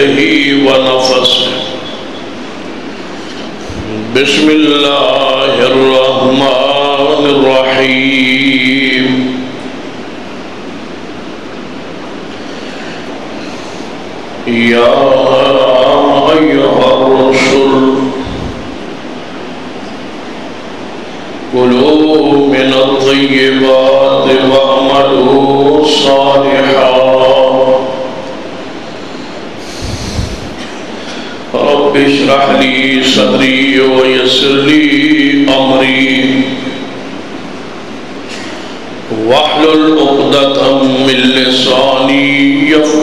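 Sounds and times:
man chanting: 0:00.0 - 0:02.1, 0:03.6 - 0:09.6, 0:14.4 - 0:18.8, 0:21.5 - 0:28.4, 0:31.4 - 0:36.9, 0:39.0 - 0:43.0.

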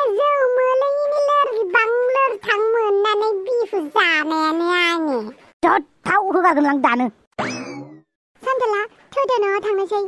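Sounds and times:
person speaking: 0:01.4 - 0:07.3
cartoon descending tone: 0:07.4 - 0:08.0.

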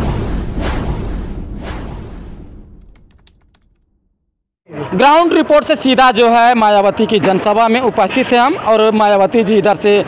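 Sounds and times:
low rumbling hit: 0:00.0 - 0:02.9.

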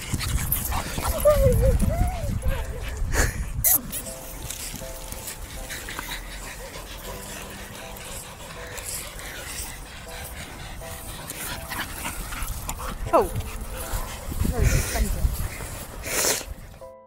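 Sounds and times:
dog panting: 0:00.0 - 0:17.0
dog whimpering: 0:01.0 - 0:02.8.

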